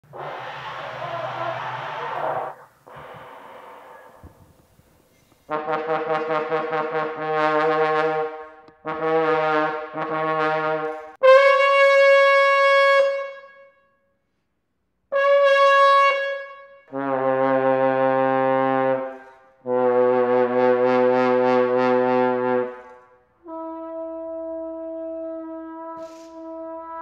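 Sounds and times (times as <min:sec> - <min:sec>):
airy breathy noise: 0:00.0 - 0:05.5
trombone playing: 0:05.5 - 0:13.4, 0:15.1 - 0:22.8, 0:23.4 - 0:27.0.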